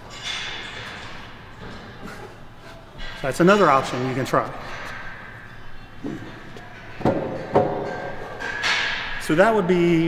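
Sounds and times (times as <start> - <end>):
gym room noise: 0.0 - 10.0.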